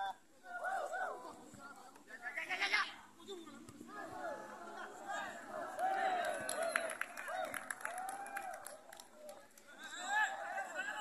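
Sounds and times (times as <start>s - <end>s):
spectators talking: 0.0s - 7.8s.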